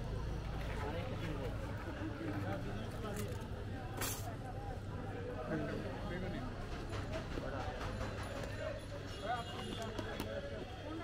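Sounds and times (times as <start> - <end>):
men chattering in a crowd: 0.6 - 11.0.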